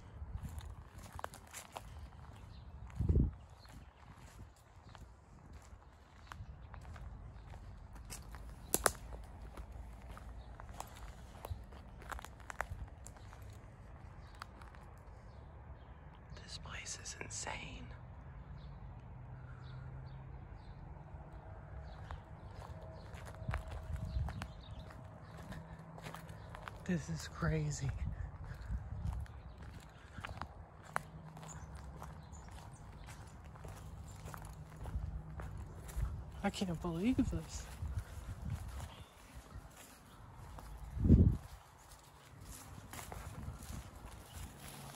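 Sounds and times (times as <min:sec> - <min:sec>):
footsteps on leaves and brush: 0:00.3 - 0:14.9, 0:22.0 - 0:44.9
twigs clicking and snapping: 0:06.8 - 0:13.6
twigs snapping: 0:08.1 - 0:10.2.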